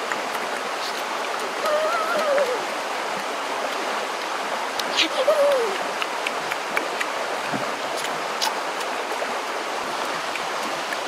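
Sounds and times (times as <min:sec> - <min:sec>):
stream water rushing: 0:00.0 - 0:11.0.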